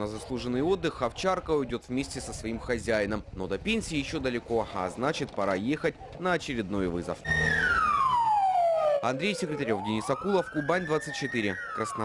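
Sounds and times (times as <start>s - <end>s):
siren wailing: 7.2s - 12.0s.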